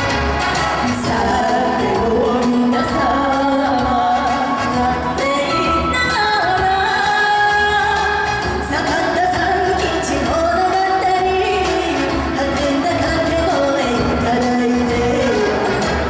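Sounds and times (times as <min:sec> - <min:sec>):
instrumental accompaniment with beat: 0:00.0 - 0:16.0
woman singing into a microphone: 0:00.7 - 0:16.0.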